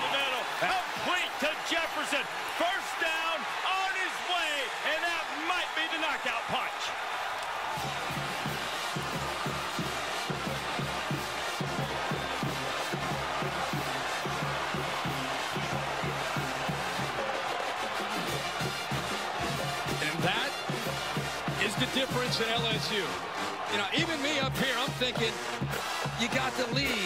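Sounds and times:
music with drum beat: 0.0s - 2.0s, 7.6s - 27.0s
stadium crowd noise: 0.0s - 27.0s.

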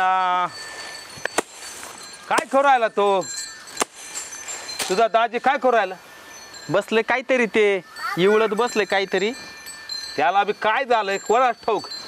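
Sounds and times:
high ringing chime tones: 0.0s - 12.0s.

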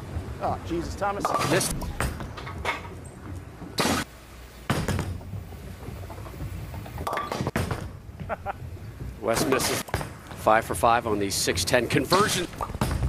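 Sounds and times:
bowling ball rolling on wooden lane: 4.8s - 9.2s.

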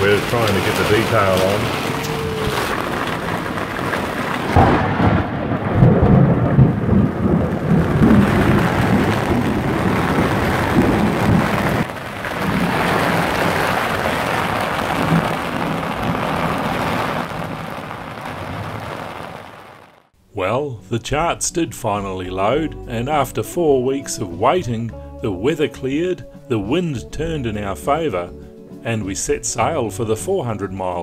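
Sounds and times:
thunder crack and rumble: 0.0s - 20.0s
heavy rain: 0.0s - 20.1s.

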